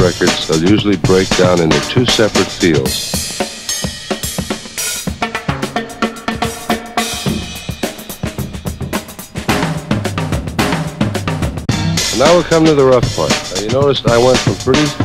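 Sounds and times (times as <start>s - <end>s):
drum kit beat: 0.0s - 15.0s
low pitched notes: 5.0s - 15.0s.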